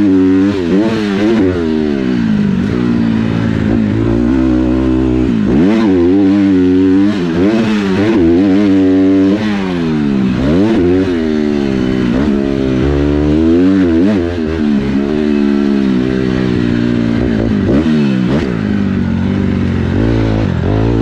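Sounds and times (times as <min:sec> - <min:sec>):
motocross bike engine: 0:00.0 - 0:21.0.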